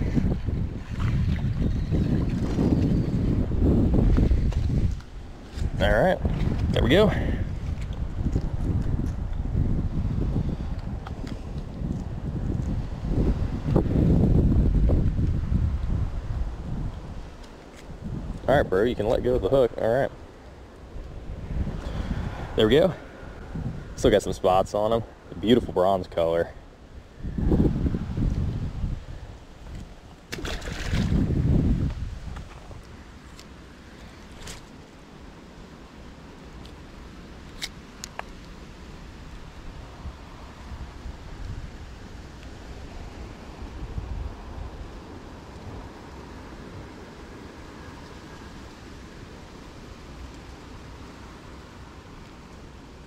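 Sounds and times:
water lapping: 0.0s - 3.2s
wind gusting on microphone: 0.0s - 34.6s, 37.3s - 53.0s.

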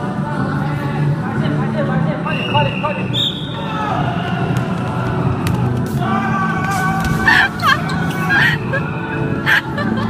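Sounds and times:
hubbub in sports hall: 0.0s - 10.0s
music: 0.0s - 10.0s.

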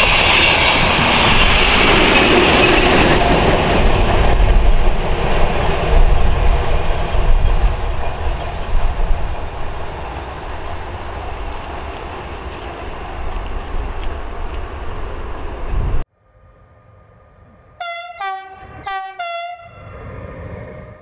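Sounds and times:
train horn blasts: 17.8s - 19.9s.

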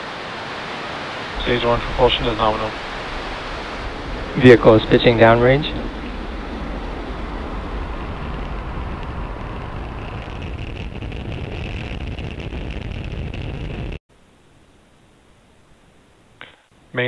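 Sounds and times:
high hiss with crackle: 0.0s - 17.0s
distant rocket engine rumble: 0.7s - 14.0s.

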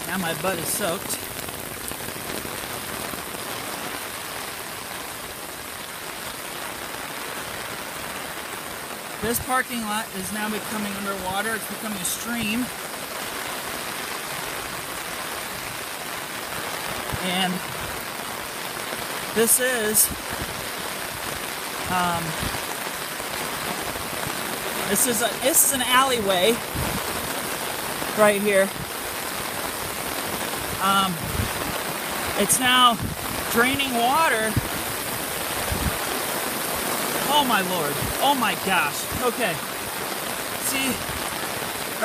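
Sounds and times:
running floodwater: 0.0s - 42.0s
torrential rain: 0.0s - 42.0s.

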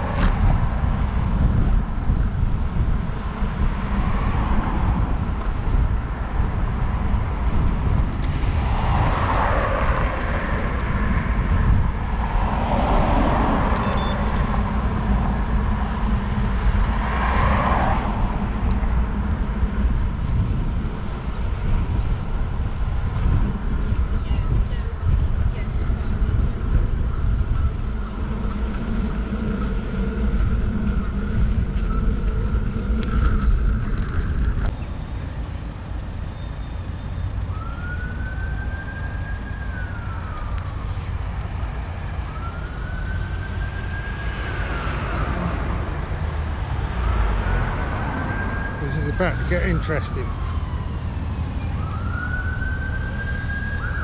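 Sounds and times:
wind rumbling on microphone: 0.0s - 54.0s
ambulance siren wailing: 9.0s - 20.2s, 36.5s - 54.0s.

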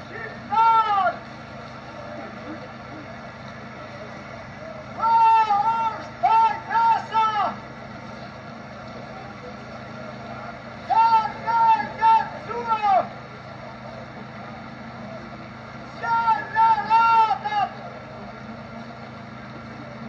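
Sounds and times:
steady background hum: 0.0s - 20.0s
man wailing: 0.2s - 1.2s, 5.0s - 7.6s, 10.9s - 13.1s, 16.0s - 17.8s.

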